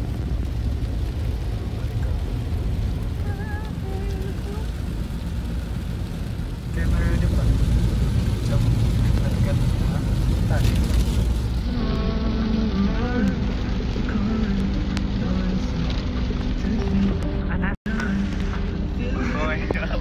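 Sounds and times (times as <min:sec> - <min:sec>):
heavy rain on a car: 0:00.0 - 0:20.0
road and engine rumble: 0:00.0 - 0:20.0.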